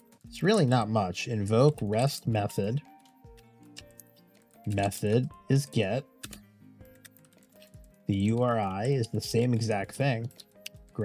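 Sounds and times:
quiet background music: 0.0 - 11.0
keyboard keys clicking: 6.2 - 11.0.

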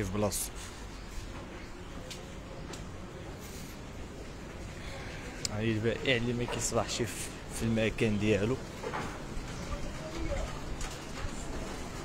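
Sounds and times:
large hall background noise: 0.0 - 12.0.

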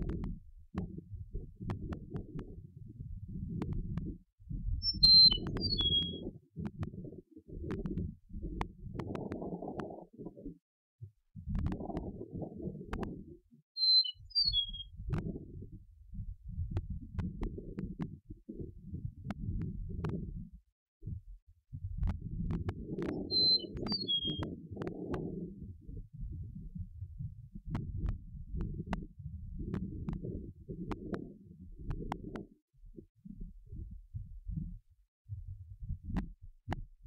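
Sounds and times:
meadowlark whistled song: 4.8 - 6.3, 13.8 - 14.9, 23.0 - 24.5.

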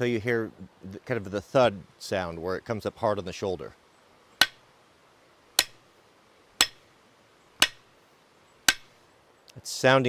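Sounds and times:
hatchet striking wooden handle: 4.4 - 4.6, 5.6 - 5.8, 6.6 - 6.8, 7.6 - 7.9, 8.7 - 8.9.

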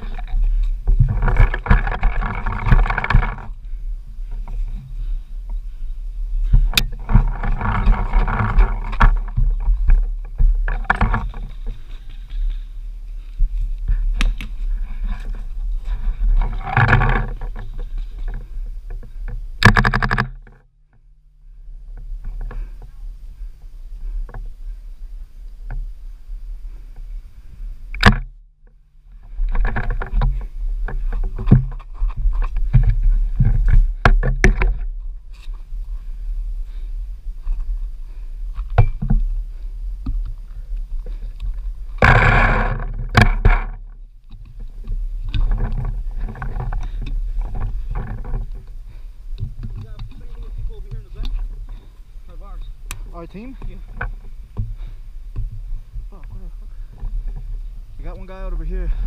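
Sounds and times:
footsteps through dry grass: 0.0 - 19.6
wind rumbling on microphone: 0.0 - 59.0.

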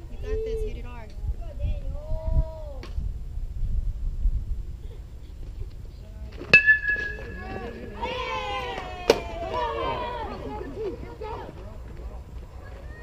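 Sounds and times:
metal bat hitting ball: 6.5 - 8.1.

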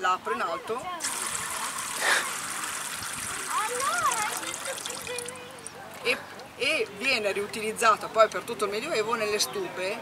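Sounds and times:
water spraying into a ceramic jug: 1.0 - 5.7.

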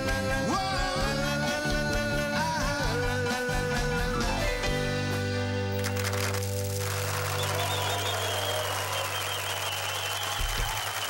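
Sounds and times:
audience applause: 5.8 - 11.0.

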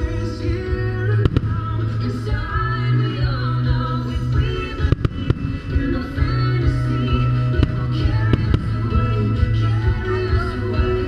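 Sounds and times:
music with singing: 0.0 - 11.0
firework bangs: 1.2 - 1.8, 4.8 - 6.0, 7.6 - 9.0.

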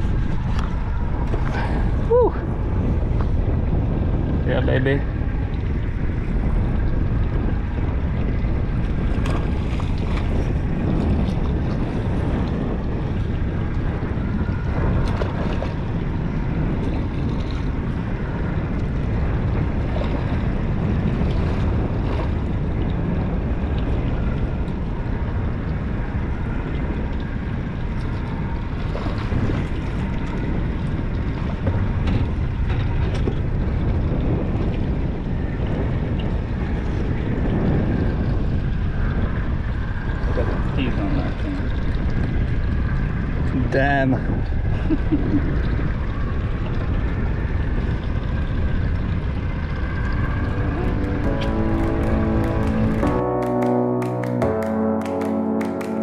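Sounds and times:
wind buffeting microphone: 0.0 - 53.4
water lapping against boat hull: 5.1 - 24.8.

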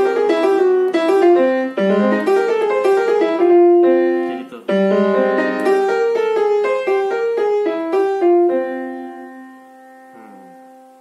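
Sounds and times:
piano jazz lick: 0.0 - 11.0
soft piano notes: 0.0 - 11.0.

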